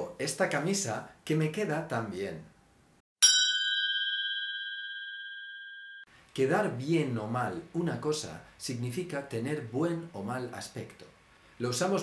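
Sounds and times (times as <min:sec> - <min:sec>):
bell-like ding: 0:03.2 - 0:06.1.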